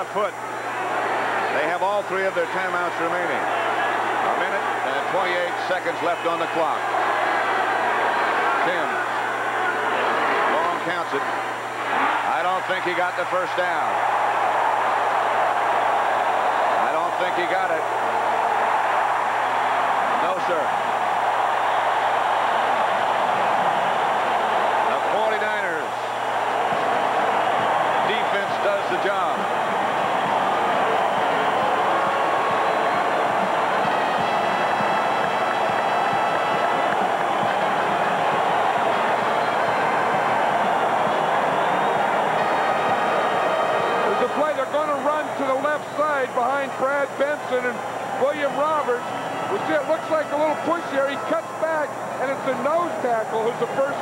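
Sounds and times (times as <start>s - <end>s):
stadium crowd cheering: 0.0s - 54.0s.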